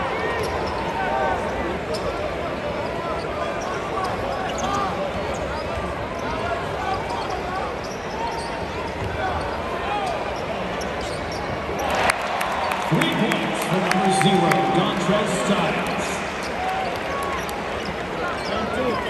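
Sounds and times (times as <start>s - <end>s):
arena crowd noise: 0.0s - 19.0s.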